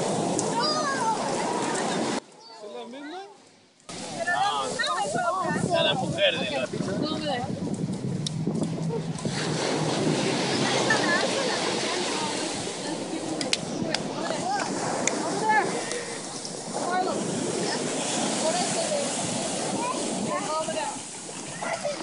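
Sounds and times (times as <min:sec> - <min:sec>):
surf washing on sand: 0:00.0 - 0:02.2, 0:03.9 - 0:22.0
people talking indistinctly: 0:00.4 - 0:22.0.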